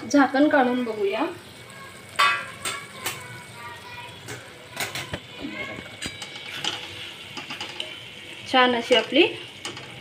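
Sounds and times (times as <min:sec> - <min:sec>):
spoon scraping metal pan: 0:04.8 - 0:10.0.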